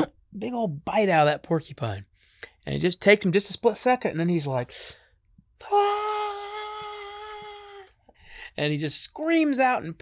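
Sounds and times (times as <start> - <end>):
man crying out: 5.6 - 8.0.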